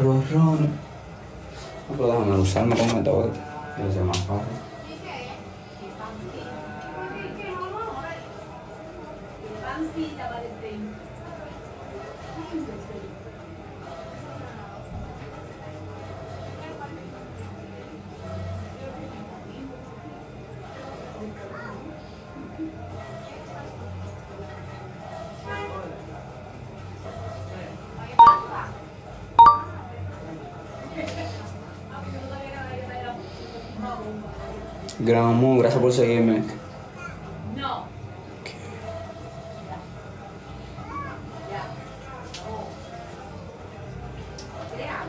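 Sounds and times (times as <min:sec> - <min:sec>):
background talk: 0:00.0 - 0:45.0
faint background voices: 0:00.0 - 0:45.0.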